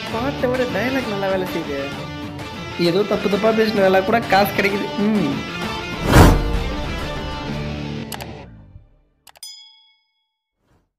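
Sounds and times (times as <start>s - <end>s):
background music: 0.0s - 9.0s
bright bell ding: 9.4s - 10.4s.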